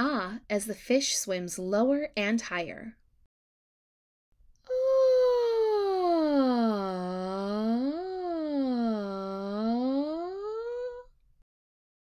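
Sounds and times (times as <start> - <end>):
woman singing pitch glide: 5.6 - 11.1.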